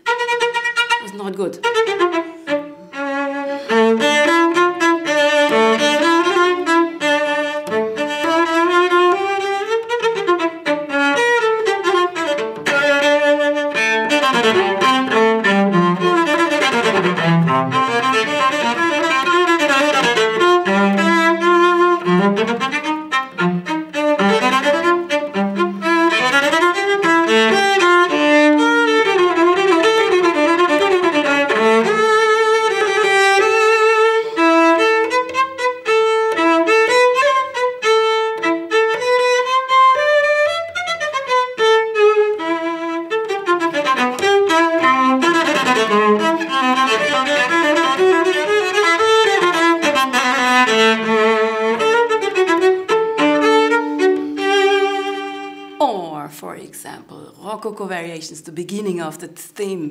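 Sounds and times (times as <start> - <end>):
solo cello bowed: 0.0 - 55.8.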